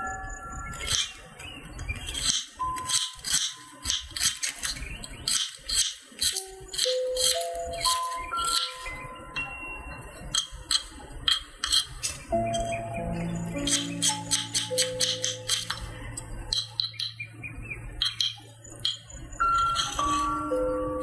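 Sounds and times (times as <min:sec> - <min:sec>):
chime-like background music: 0:00.0 - 0:01.5, 0:02.6 - 0:03.9, 0:06.4 - 0:10.5, 0:12.3 - 0:17.2, 0:19.1 - 0:21.0.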